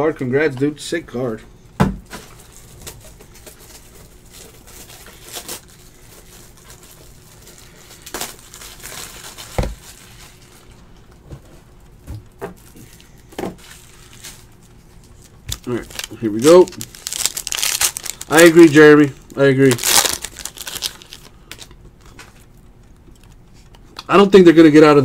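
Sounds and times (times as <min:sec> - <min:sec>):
packaging crinkling: 0:02.1 - 0:10.9, 0:12.6 - 0:23.7.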